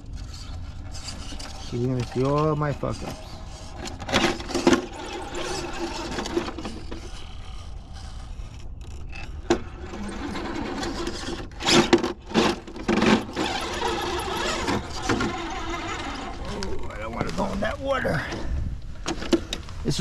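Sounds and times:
electric motor whining: 0:09.6 - 0:17.6.

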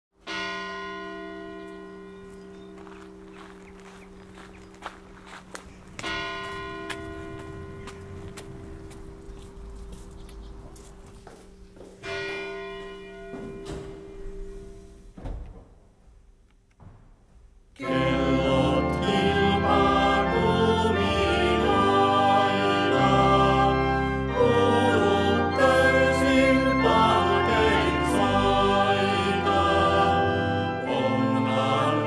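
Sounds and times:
church bell ringing: 0:00.2 - 0:15.2, 0:17.8 - 0:32.0.

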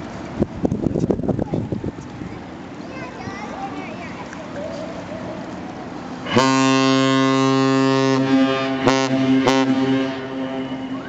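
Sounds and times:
ship horn blast: 0:06.2 - 0:11.0.

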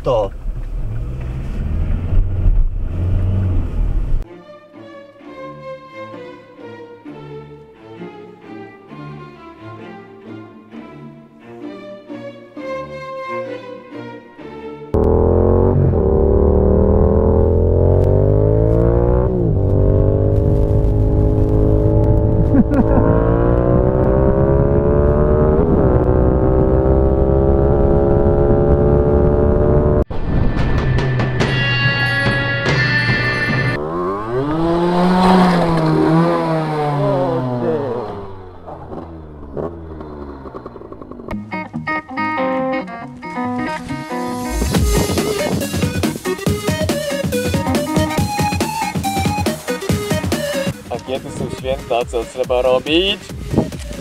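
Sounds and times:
car engine and road noise: 0:00.0 - 0:04.3, 0:14.9 - 0:54.0.

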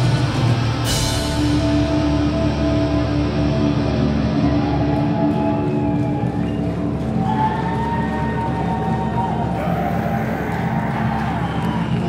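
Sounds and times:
distorted electric guitars droning: 0:00.0 - 0:12.0.

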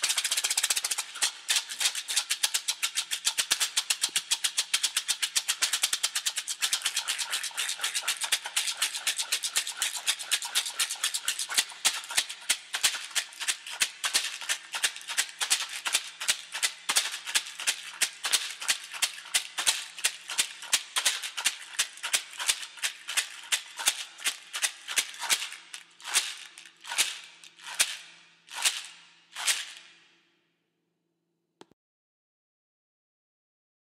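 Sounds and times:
rawhide rattle shaken: 0:00.0 - 0:30.0.

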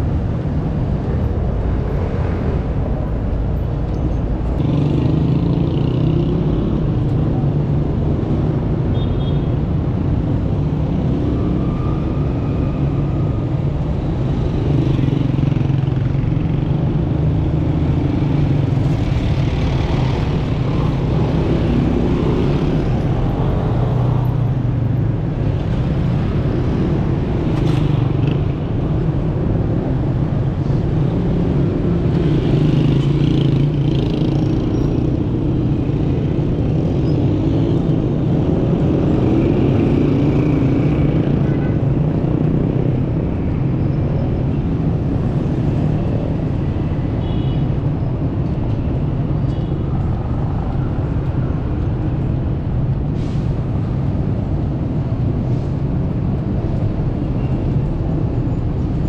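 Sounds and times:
city street traffic: 0:00.0 - 0:59.0
motorcycles passing: 0:04.5 - 0:09.0, 0:09.8 - 0:53.0.

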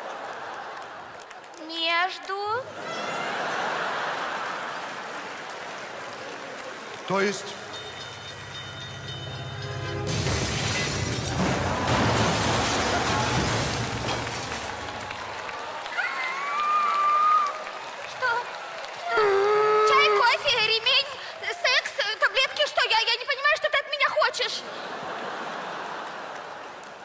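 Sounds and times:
train rushing past and crashing: 0:07.7 - 0:15.1.

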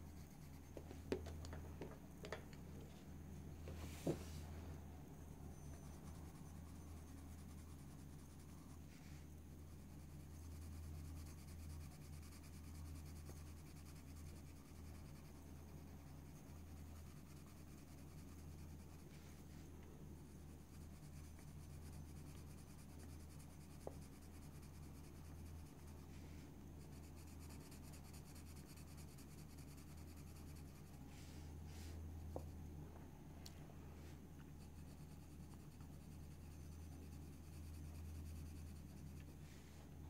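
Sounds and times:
pencil scratching on paper: 0:00.0 - 0:00.9, 0:05.6 - 0:19.6, 0:20.2 - 0:26.2, 0:26.8 - 0:31.0, 0:34.6 - 0:39.4
low steady hum: 0:00.0 - 0:40.0.

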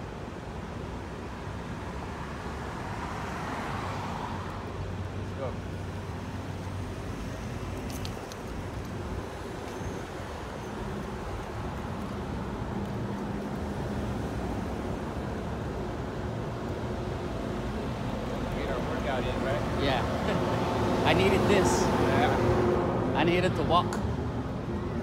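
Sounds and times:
traffic engine hum and road noise: 0:00.0 - 0:25.0
vehicle passing: 0:17.1 - 0:25.0.

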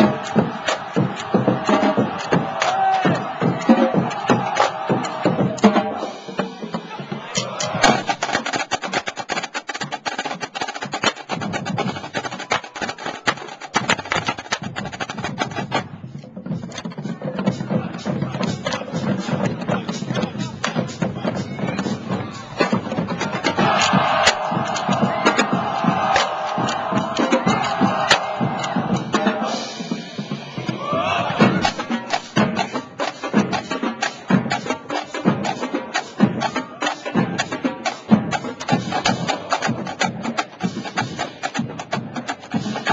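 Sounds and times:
snare drum cadence: 0:00.0 - 0:05.6, 0:23.6 - 0:28.8.

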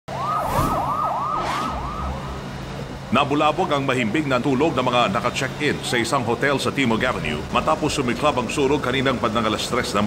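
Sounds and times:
siren yelping: 0:00.1 - 0:03.0.

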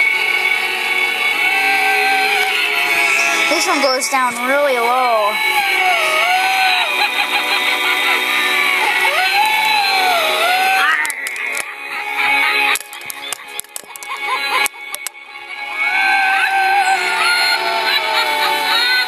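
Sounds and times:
electronic spooky tune: 0:10.2 - 0:12.5
sharp clicks: 0:11.0 - 0:11.8, 0:12.7 - 0:15.2.

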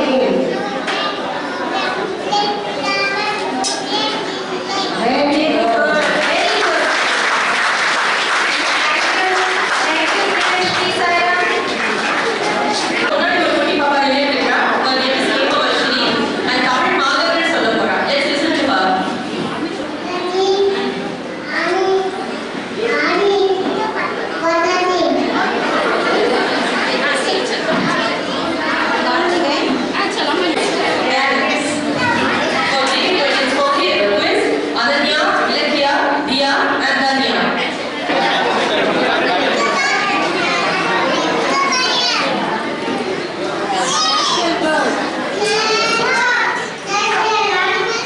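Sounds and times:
children speaking into microphones: 0:00.0 - 0:07.2, 0:08.4 - 0:48.0
children chattering: 0:00.0 - 0:48.0
murmur of people talking: 0:00.0 - 0:48.0.

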